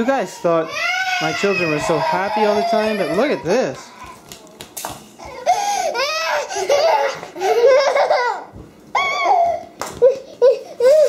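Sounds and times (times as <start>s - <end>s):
toddler squealing and laughing: 5.3s - 11.0s.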